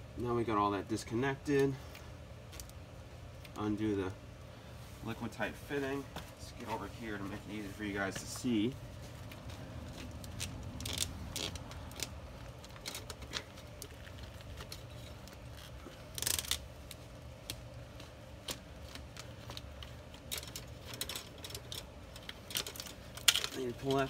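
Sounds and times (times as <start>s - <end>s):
fitting clicks and scrapes: 9.1s - 24.0s.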